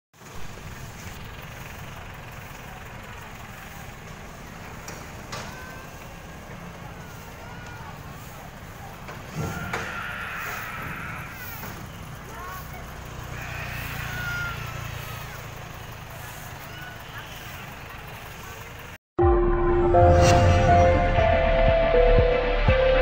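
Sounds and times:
distant traffic and motorbikes: 0.2 - 19.0
faint voices: 0.4 - 19.0.

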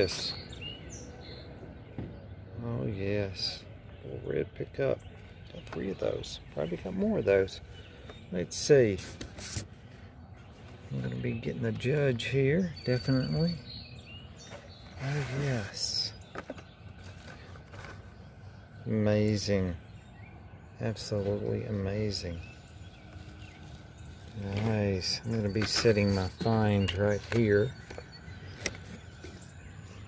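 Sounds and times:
quiet outdoor background: 0.0 - 30.0
handling toy cars in packaging: 15.2 - 18.1
handling noise: 23.0 - 29.7.

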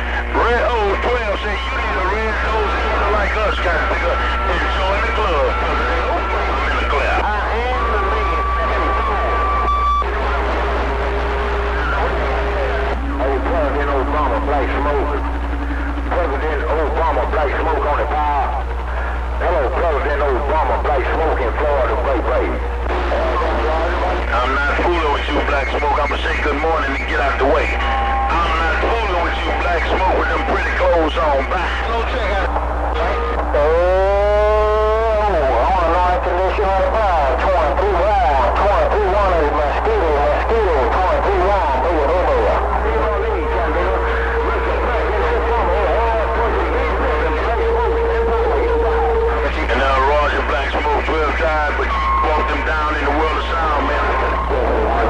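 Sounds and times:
garbled voices over radio: 0.0 - 55.0
steady low hum: 0.0 - 55.0.

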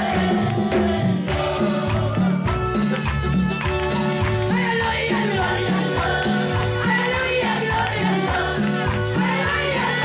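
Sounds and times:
congregation singing: 0.0 - 3.0, 4.2 - 10.0
percussion rhythm: 0.0 - 10.0.

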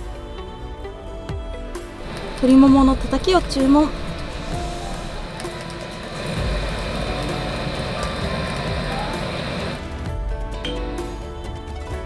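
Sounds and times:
background music: 0.0 - 12.0
gas torch hissing: 1.9 - 10.2.

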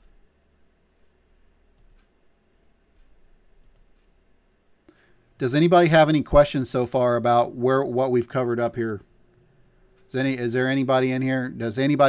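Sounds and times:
faint sharp clicks: 1.0 - 2.2, 2.9 - 4.2.

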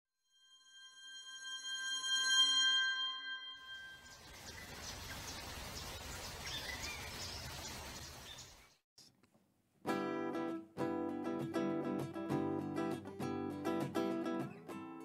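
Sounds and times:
bell-like electronic chord: 0.3 - 4.4
birds chirping: 3.8 - 8.8.

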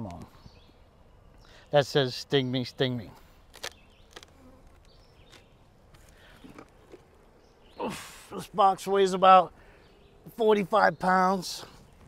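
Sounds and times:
honeybees buzzing: 3.2 - 11.0.

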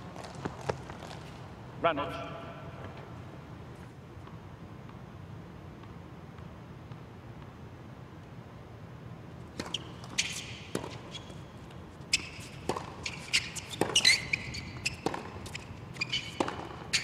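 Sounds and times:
tennis ball bouncing: 9.4 - 17.0
sneakers squeaking on court: 9.5 - 17.0
tennis racket strikes: 12.2 - 17.0.

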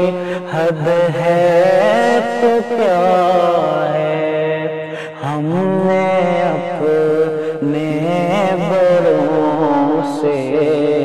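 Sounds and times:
man singing solo: 0.0 - 11.0.

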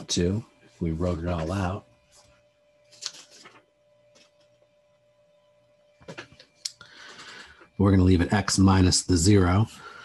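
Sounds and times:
faint steady hum: 0.0 - 10.0
paper rustling and marker scraping: 1.3 - 4.6.

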